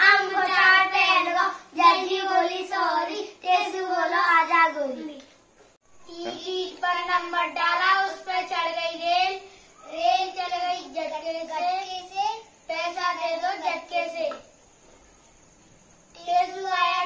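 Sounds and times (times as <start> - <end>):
boys singing folk song: 0.0 - 5.0, 6.3 - 14.5
singers breathing: 9.4 - 9.8.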